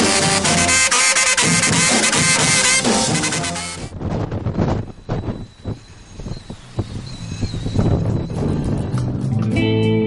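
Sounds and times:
strong wind buffeting microphone: 0:03.8 - 0:09.4.

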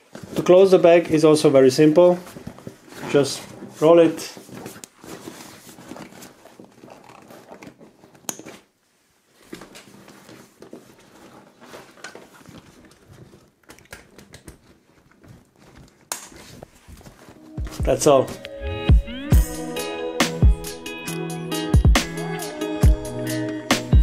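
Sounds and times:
waterproof fabric crinkling: 0:00.0 - 0:18.4.

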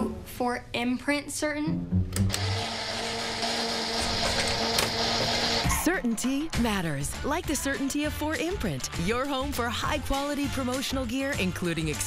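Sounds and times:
toaster electrical buzz: 0:02.2 - 0:05.8.

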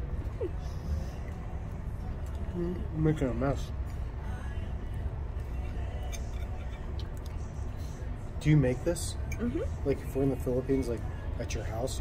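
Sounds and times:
low room hum: 0:00.0 - 0:12.0
fork clinking on plate: 0:06.0 - 0:06.9.

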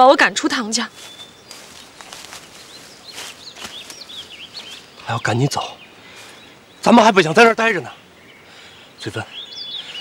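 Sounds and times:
faint outdoor background hiss: 0:00.0 - 0:10.0
small birds chirping: 0:00.0 - 0:10.0.

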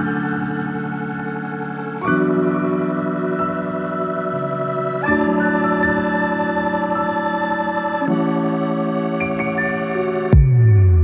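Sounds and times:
held keyboard chords: 0:00.0 - 0:11.0.

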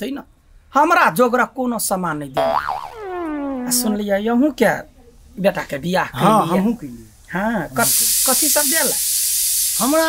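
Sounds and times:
comic boing sound effect: 0:02.4 - 0:04.0.

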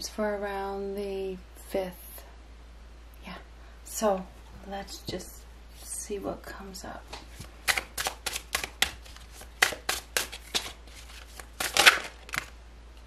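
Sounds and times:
cards being shuffled: 0:07.2 - 0:12.6.

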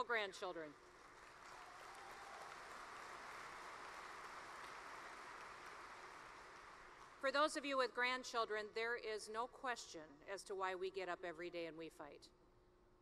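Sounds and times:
large audience applauding: 0:00.8 - 0:07.2.

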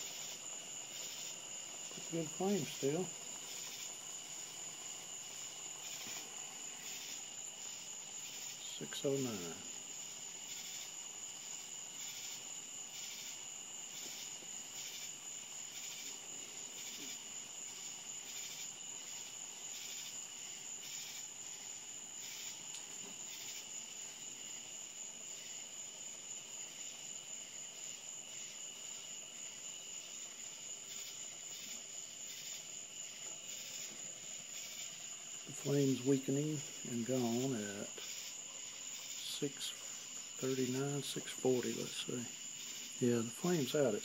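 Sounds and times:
water boiling hard in a pan: 0:00.0 - 0:43.8
crickets chirping: 0:00.0 - 0:44.0.

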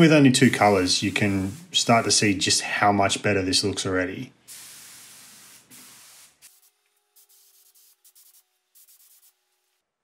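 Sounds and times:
paint spray gun hissing: 0:00.4 - 0:02.2, 0:04.5 - 0:09.4.

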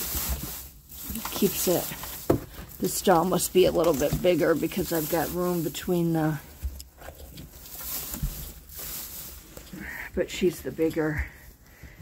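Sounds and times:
rustling of dry hay bedding: 0:00.0 - 0:12.0.

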